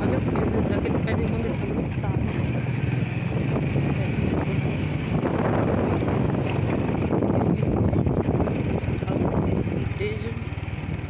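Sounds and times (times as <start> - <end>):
engine and road rumble: 0.0 - 11.0
wind buffeting microphone: 0.0 - 11.0.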